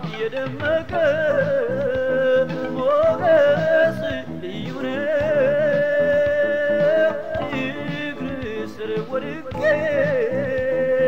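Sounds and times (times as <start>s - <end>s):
instrumental backing: 0.0s - 11.0s
person singing gospel song: 0.0s - 11.0s.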